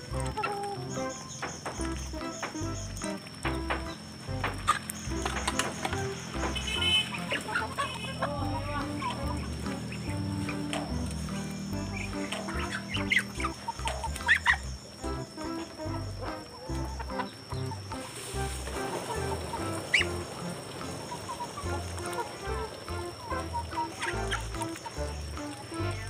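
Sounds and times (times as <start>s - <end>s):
background music with bass line: 0.0s - 7.5s, 8.2s - 26.0s
chickens clucking: 0.0s - 26.0s.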